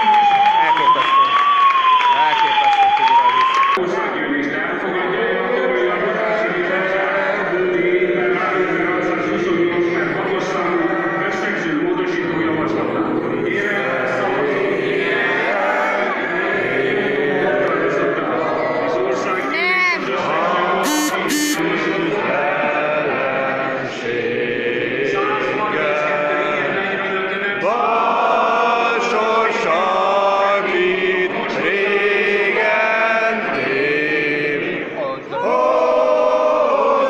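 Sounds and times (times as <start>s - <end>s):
applause: 0.0s - 3.8s
siren wailing: 0.0s - 3.8s, 20.8s - 21.6s
crowd singing in a hall: 3.7s - 37.0s
noisemaker blasts: 20.8s - 21.6s.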